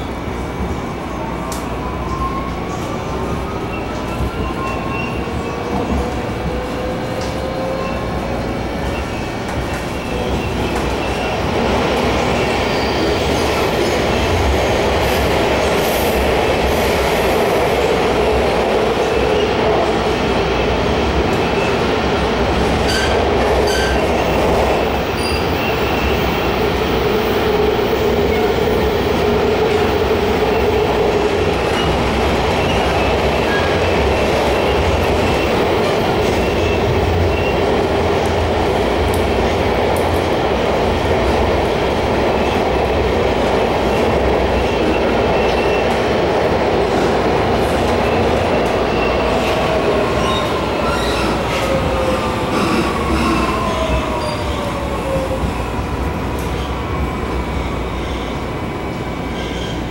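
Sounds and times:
train wheels rumbling on track: 0.0s - 59.9s.

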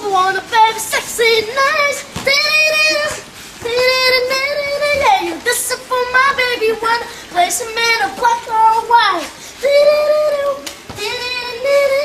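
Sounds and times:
boy singing: 0.0s - 12.0s.

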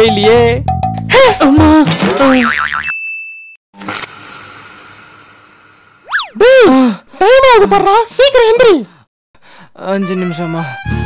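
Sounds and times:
cartoon boing: 2.4s - 2.9s
wobbling cartoon sounds: 6.0s - 6.6s.

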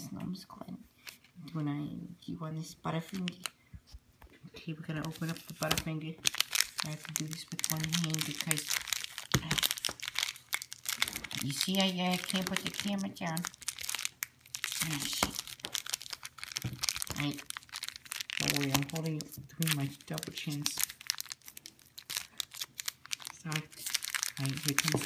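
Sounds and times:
candy wrapper crinkling: 3.0s - 3.6s, 4.7s - 25.0s.

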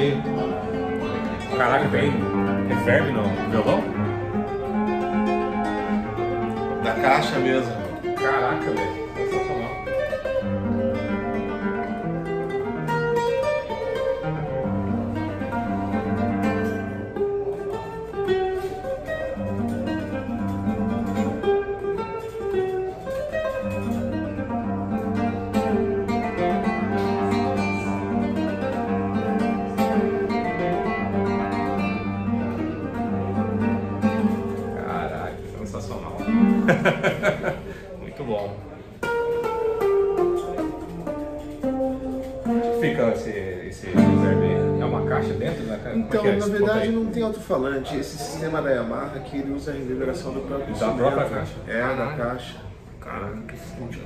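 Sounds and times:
classical guitar fingerstyle melody: 0.0s - 54.0s.

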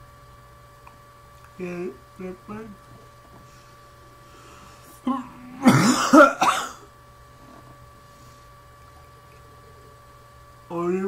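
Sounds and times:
man clearing his throat: 5.1s - 6.9s
man coughing harshly: 5.6s - 6.9s.

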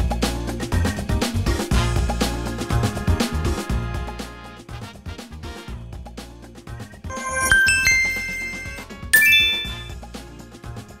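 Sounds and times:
bright chime ding: 7.1s - 10.0s.

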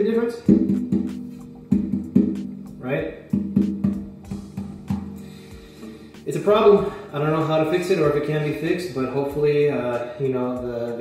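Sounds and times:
guitar strums ringing: 0.0s - 8.1s.

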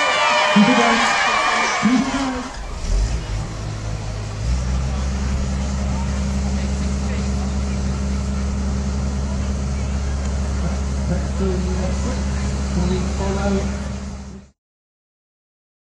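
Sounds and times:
engine droning steadily: 0.6s - 14.6s.

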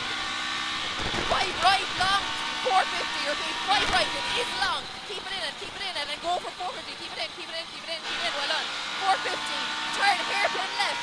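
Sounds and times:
person talking: 1.2s - 11.0s.

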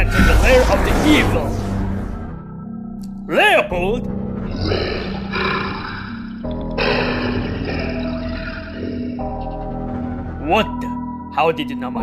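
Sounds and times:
background music drone: 0.0s - 12.0s.

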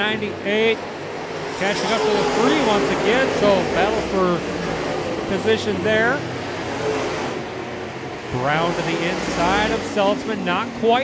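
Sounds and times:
race car engines droning: 0.0s - 11.0s
person speaking: 1.6s - 4.4s.

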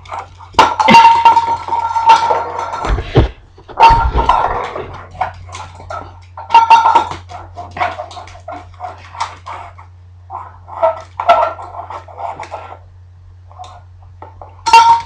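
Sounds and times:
dull thumps: 2.7s - 5.3s.

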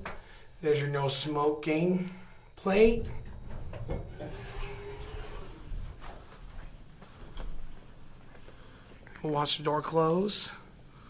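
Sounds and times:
elevator doors sliding open: 2.7s - 6.8s
low rumbling handling noise: 2.7s - 8.3s
door operator whine: 2.9s - 6.4s
soft footsteps: 3.2s - 9.3s.

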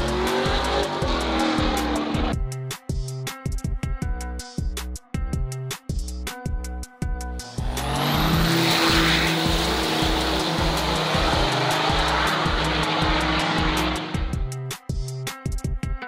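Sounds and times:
diesel truck engine at full throttle: 0.0s - 2.4s, 7.4s - 14.6s
background music with steady beat: 0.0s - 16.0s.

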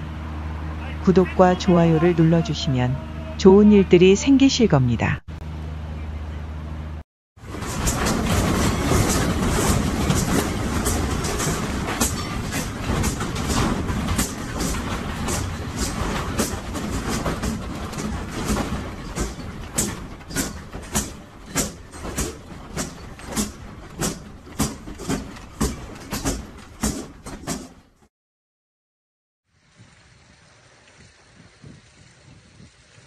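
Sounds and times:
office furniture rattling and banging: 7.4s - 28.1s
loose objects knocking: 7.5s - 28.0s.

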